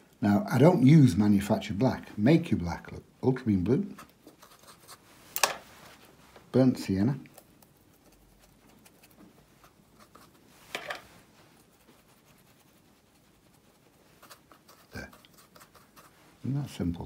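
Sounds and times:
paintbrush scratching and dabbing: 3.9s - 16.9s.

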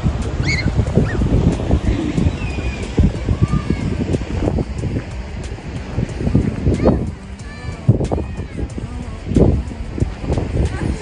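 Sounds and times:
surf breaking on rocks: 0.0s - 11.0s
wind buffeting microphone: 0.0s - 11.0s.

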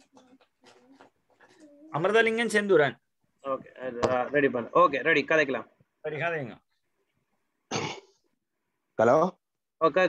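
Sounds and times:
person coughing: 7.7s - 8.2s.

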